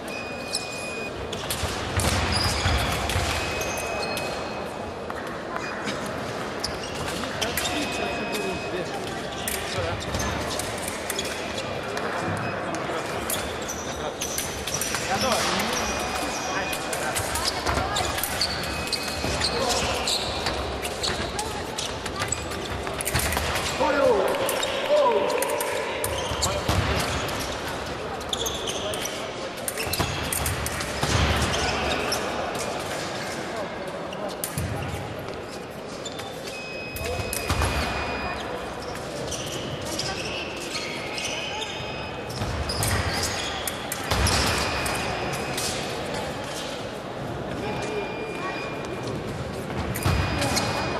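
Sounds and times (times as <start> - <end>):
shoe squeaks: 0.0 - 1.6, 2.3 - 4.8, 6.6 - 32.7, 34.1 - 46.9, 47.6 - 50.9
sports hall noise and voices: 0.0 - 50.9.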